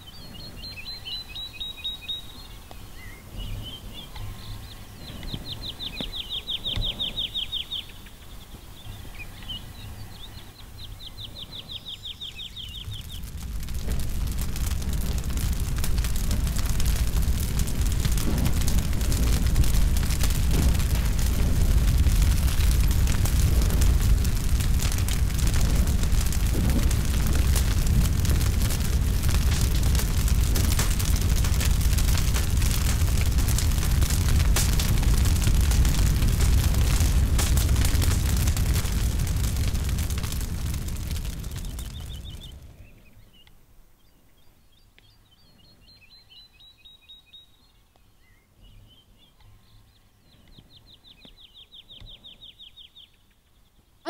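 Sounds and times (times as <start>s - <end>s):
large fire crackling and rumbling: 0.0s - 43.5s.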